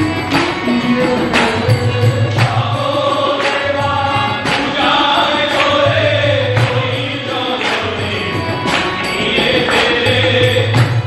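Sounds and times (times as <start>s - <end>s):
harmonium: 0.0s - 11.0s
men singing together: 0.0s - 11.0s
sharp percussion strikes: 0.0s - 11.0s.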